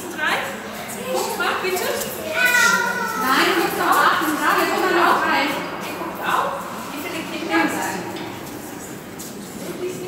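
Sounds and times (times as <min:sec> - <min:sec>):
children speaking: 0:00.6 - 0:08.3
high child's voice drawn out: 0:02.1 - 0:03.4.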